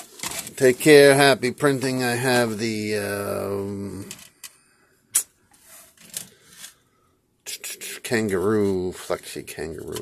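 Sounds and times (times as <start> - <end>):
hand rubbing and scraping plastic: 0.0 - 4.6, 5.2 - 6.8, 7.5 - 10.0.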